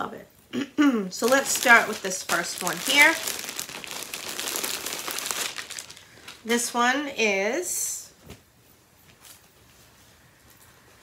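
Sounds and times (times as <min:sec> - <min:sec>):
plastic bag crinkling: 0:01.1 - 0:06.7.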